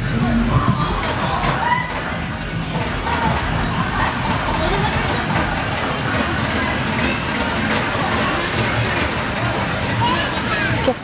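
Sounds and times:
indistinct voices: 0.0s - 11.0s
music: 0.0s - 11.0s.

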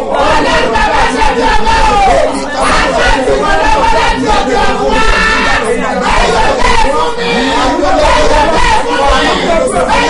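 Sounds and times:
many voices praying aloud: 0.0s - 10.0s.

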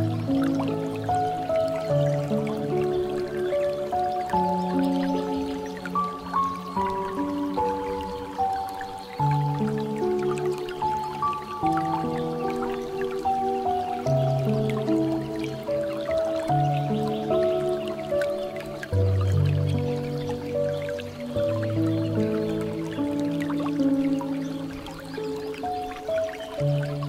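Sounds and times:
soft piano chords: 0.0s - 27.0s
water dripping from fountain spout: 0.0s - 27.0s.

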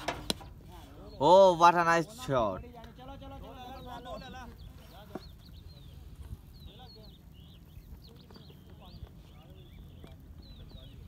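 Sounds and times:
cricket bat striking ball: 0.0s - 0.5s.

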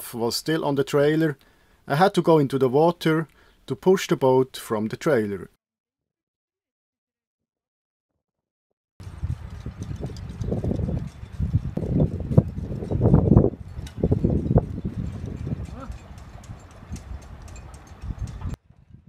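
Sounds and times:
wind gusting on microphone: 9.0s - 19.0s.

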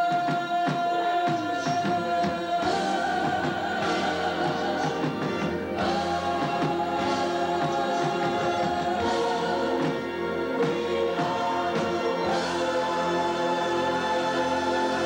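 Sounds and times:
chorus singing: 0.0s - 15.0s.

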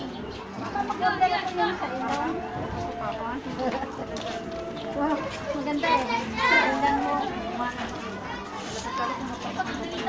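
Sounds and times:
children calling out: 4.8s - 9.7s.

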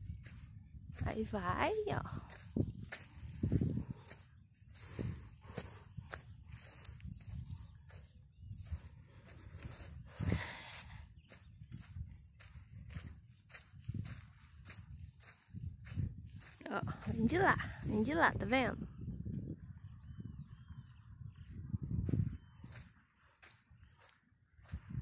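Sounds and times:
footsteps on sand: 0.0s - 18.2s, 22.0s - 25.0s.

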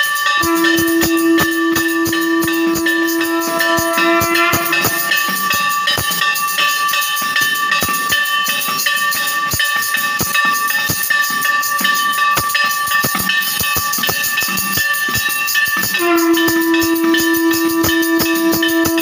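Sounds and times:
bells ringing: 0.0s - 19.0s
conch shell note: 0.4s - 6.5s, 16.0s - 19.0s
drum beats: 0.4s - 8.1s, 15.9s - 19.0s
metallic clanging: 0.4s - 8.9s.

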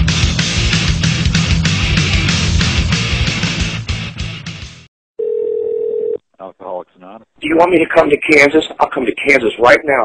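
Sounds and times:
rock music: 0.0s - 4.9s
telephone tone: 5.2s - 6.2s.

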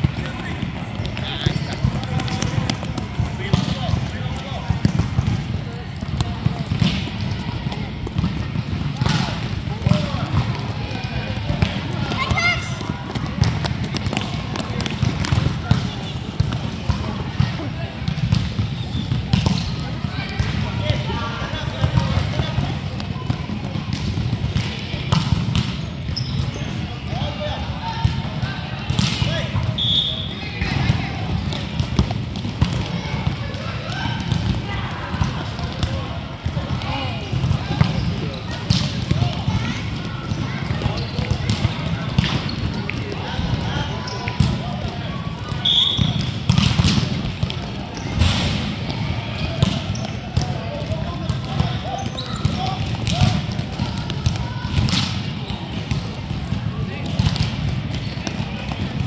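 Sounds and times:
echoing indistinct voices: 0.0s - 18.7s
ball kicked and bouncing on court: 0.0s - 27.2s, 30.5s - 59.0s.

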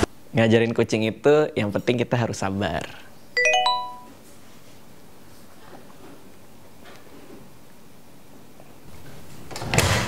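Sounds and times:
phone message alert chime: 3.4s - 4.1s.

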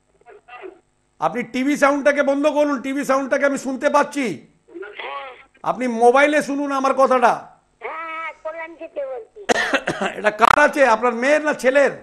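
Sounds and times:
man coughing: 9.5s - 10.3s.

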